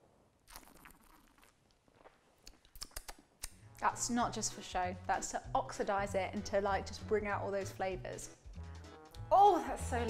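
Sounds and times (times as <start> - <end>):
wet mouth clicks: 0.5 - 3.6.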